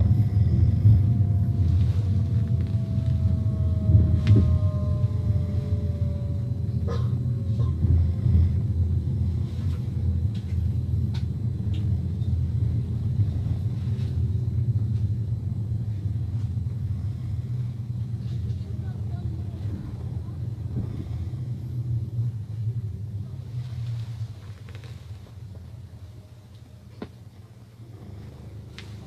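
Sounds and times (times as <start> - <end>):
vehicle rumble in motion: 0.0 - 29.0.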